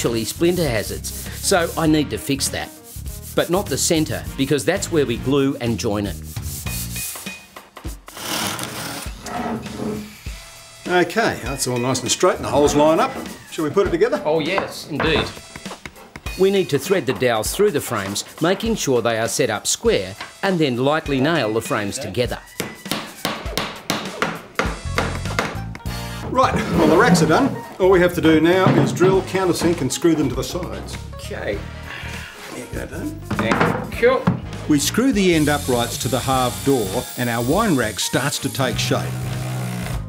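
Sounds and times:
sandpaper rubbing on wood: 0:00.0 - 0:04.2, 0:05.9 - 0:07.4, 0:08.1 - 0:10.2, 0:17.6 - 0:18.6, 0:35.2 - 0:38.2
background music: 0:00.0 - 0:40.0.

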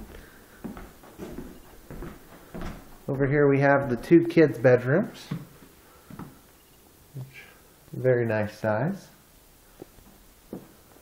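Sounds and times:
soft footsteps on floor: 0:00.0 - 0:04.2, 0:05.2 - 0:06.5, 0:09.8 - 0:11.0.

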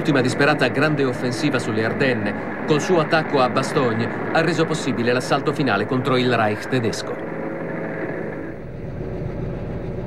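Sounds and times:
low drone: 0:00.0 - 0:10.0
vehicle engine rumble: 0:00.0 - 0:10.0.

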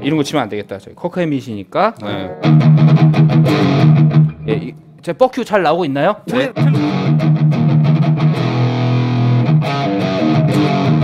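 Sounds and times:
overdriven electric guitar note: 0:02.2 - 0:04.5.

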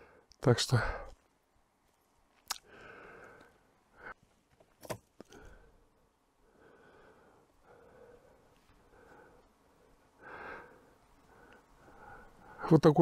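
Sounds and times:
faint breathing: 0:00.0 - 0:01.3, 0:02.6 - 0:04.3, 0:05.2 - 0:12.8.

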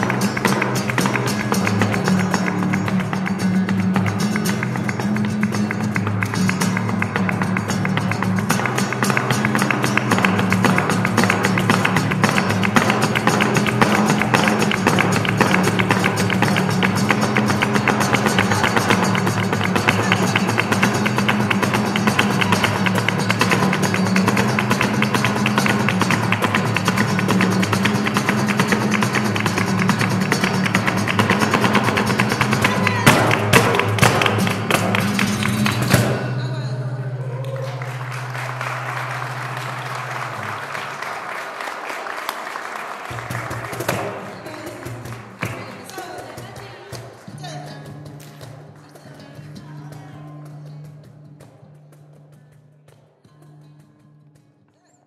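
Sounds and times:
hand-clapping: 0:00.0 - 0:36.4, 0:37.4 - 0:54.6
cajon drum: 0:00.0 - 0:41.5, 0:43.0 - 0:54.6
flamenco guitar: 0:00.0 - 0:55.0.

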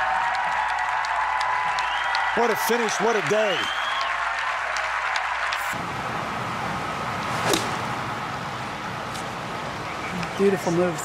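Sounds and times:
crowd applause: 0:00.0 - 0:05.8
golf club striking ball: 0:07.3 - 0:08.0.

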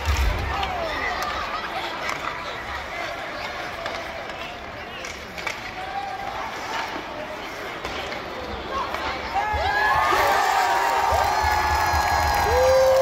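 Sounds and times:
crowd chatter in arena: 0:00.0 - 0:13.0.

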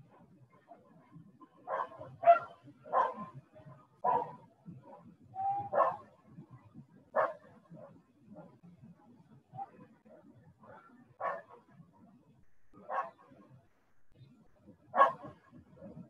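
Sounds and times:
dog barking: 0:01.6 - 0:03.4, 0:04.0 - 0:05.0, 0:05.7 - 0:06.1, 0:07.2 - 0:08.0, 0:10.6 - 0:11.6, 0:12.6 - 0:13.4, 0:14.9 - 0:15.4.

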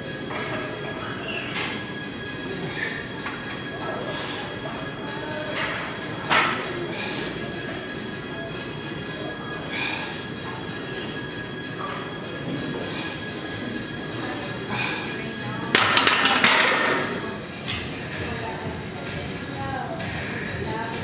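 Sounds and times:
gym background music: 0:00.0 - 0:21.0.

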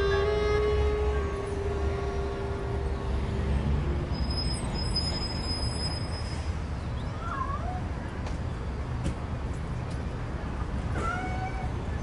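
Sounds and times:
cat meowing: 0:11.0 - 0:11.8.

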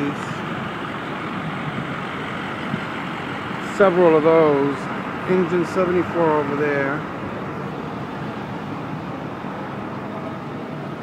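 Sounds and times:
street noise: 0:00.0 - 0:11.0
truck engines idling: 0:00.0 - 0:11.0.

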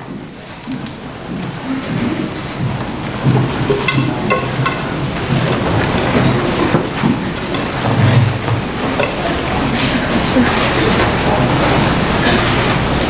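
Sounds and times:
footsteps: 0:00.1 - 0:11.6.

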